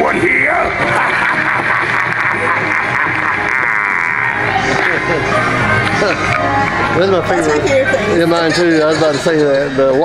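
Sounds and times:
music with distorted voice: 0:00.0 - 0:09.8.

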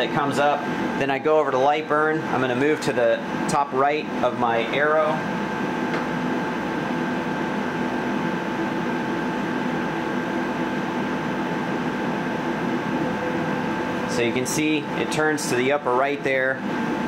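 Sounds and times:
fans and pumps humming: 0:00.0 - 0:17.0.

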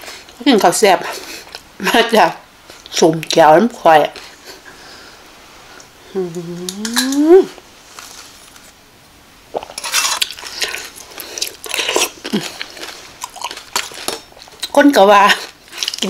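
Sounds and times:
close-up eating sounds: 0:00.0 - 0:01.8, 0:09.5 - 0:16.0.

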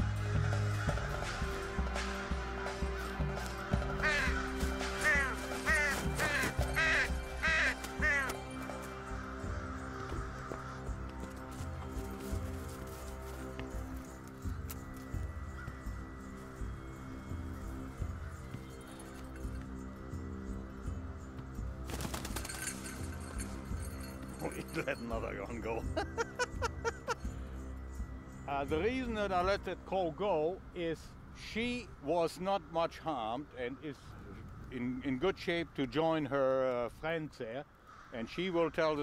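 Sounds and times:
background music with sustained tones: 0:00.0 - 0:39.0
crows cawing: 0:00.2 - 0:21.2, 0:26.0 - 0:28.0, 0:37.6 - 0:39.0.

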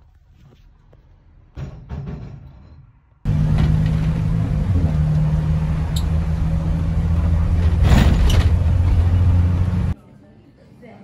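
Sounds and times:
car road noise at highway speed: 0:03.2 - 0:10.0.

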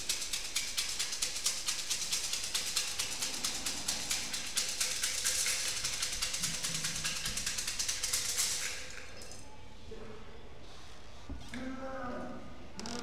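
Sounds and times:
fortune sticks rattling in a cup: 0:00.0 - 0:09.5.

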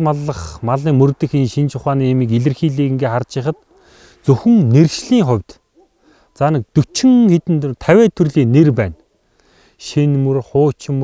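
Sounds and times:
man speaking: 0:00.0 - 0:03.5.

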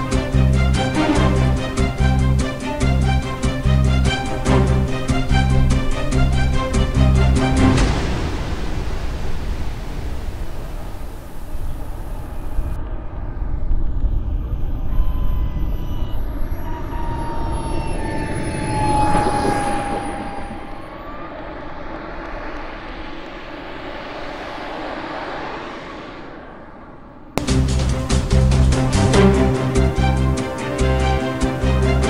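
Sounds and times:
model jet turbine whine: 0:10.0 - 0:27.4
rush and rumble of landing: 0:21.1 - 0:31.2.

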